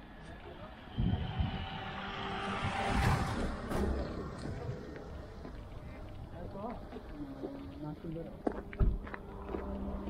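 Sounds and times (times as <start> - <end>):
car driving past: 0.5 - 6.2.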